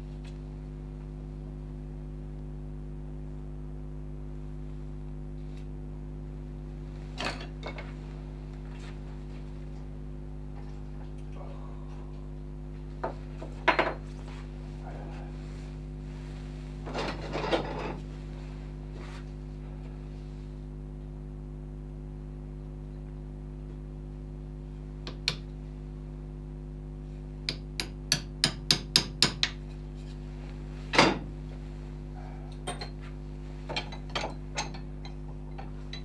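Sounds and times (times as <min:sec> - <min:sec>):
steady low hum: 0:00.0 - 0:36.0
tools knocking on wooden bench: 0:13.0 - 0:14.0, 0:27.5 - 0:29.6.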